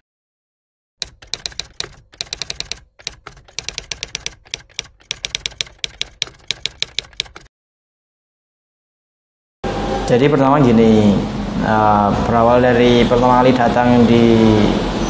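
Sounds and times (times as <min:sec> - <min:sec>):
typewriter keystrokes clicking: 0:01.0 - 0:07.5.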